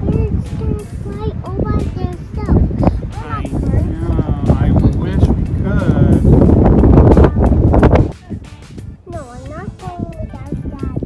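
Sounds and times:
voices talking: 0.0s - 6.4s
wind buffeting microphone: 0.0s - 11.0s.

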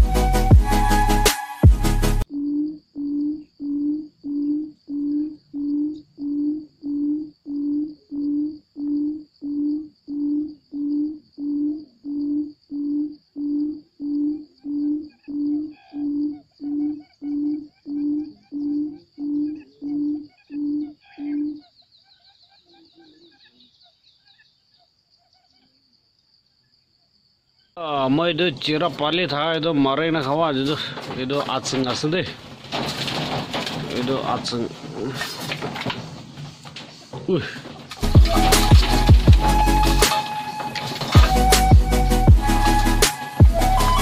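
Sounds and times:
bird low hooting call: 2.3s - 24.5s
faint chirps: 2.3s - 28.7s.

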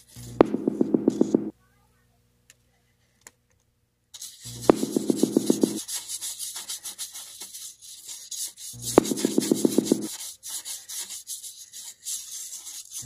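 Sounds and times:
rapid tapping: 0.4s - 1.5s, 4.6s - 5.8s, 9.0s - 10.1s
paintbrush scrubbing on canvas: 4.2s - 13.0s.

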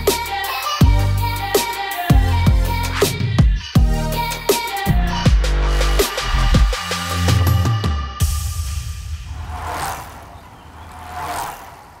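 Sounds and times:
whoosh sound effect: 9.0s - 12.0s.

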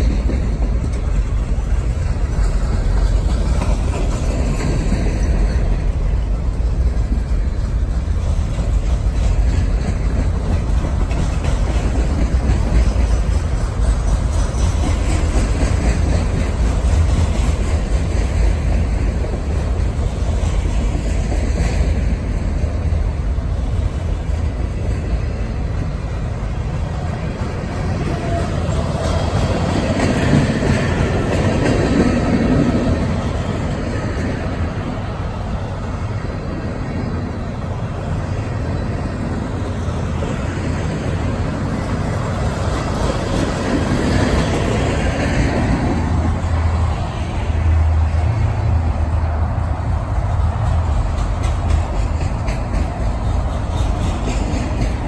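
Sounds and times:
train wheels rumbling and rattling: 0.0s - 55.0s.

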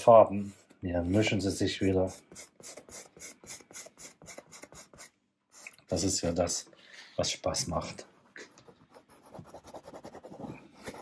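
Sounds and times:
paintbrush scrubbing on canvas: 0.0s - 6.1s.

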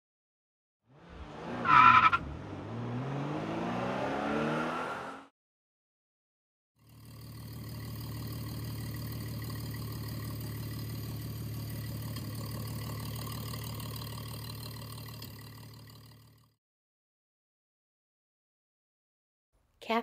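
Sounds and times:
car engine idling: 6.9s - 16.4s.

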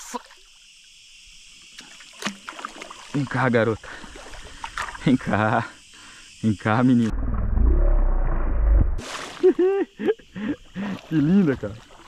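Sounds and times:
deep muffled rumble: 7.0s - 9.0s
fish splashing at surface: 9.0s - 9.5s.

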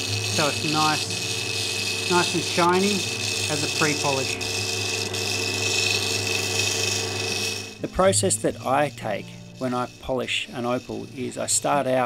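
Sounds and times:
lapidary machine humming and whining: 0.0s - 12.0s
wet wheel hiss: 0.0s - 12.0s.

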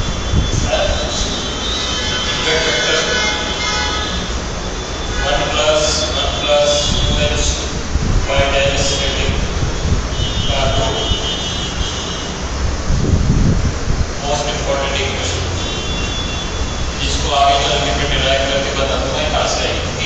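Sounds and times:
steady low rumble: 0.0s - 20.0s
man speaking: 0.6s - 1.4s, 2.0s - 3.8s, 5.1s - 9.5s, 10.5s - 11.3s, 14.2s - 15.7s, 17.0s - 20.0s.

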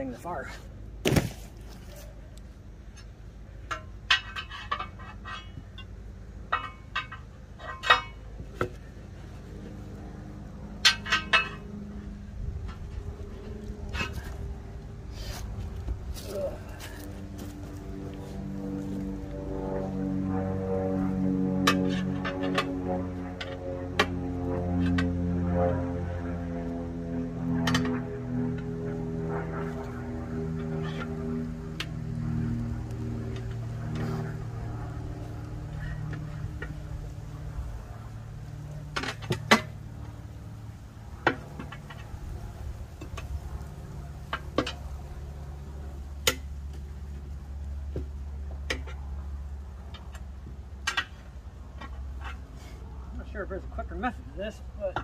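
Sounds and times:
tire irons clinking on wheel rim: 2.9s - 8.9s, 10.8s - 11.8s.

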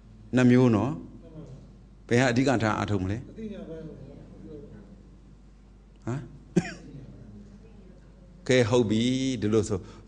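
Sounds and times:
person coughing: 6.6s - 7.0s.

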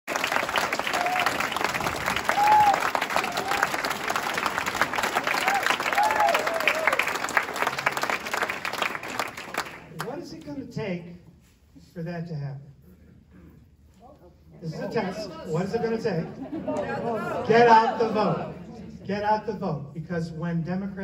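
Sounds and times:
audience applauding: 0.1s - 10.2s.

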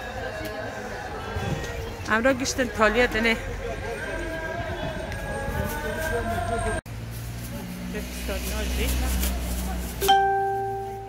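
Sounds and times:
bus engine rumble: 0.0s - 11.0s.

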